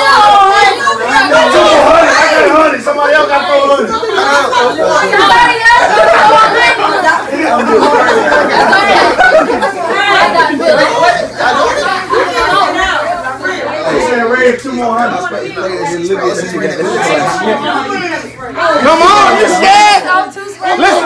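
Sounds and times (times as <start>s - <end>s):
people talking over one another: 0.0s - 21.0s.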